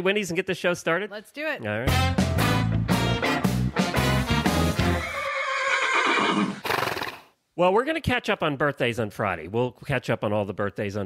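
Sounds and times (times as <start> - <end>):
jingle music with bass line: 1.8 - 5.2
horse whinny: 4.9 - 7.3.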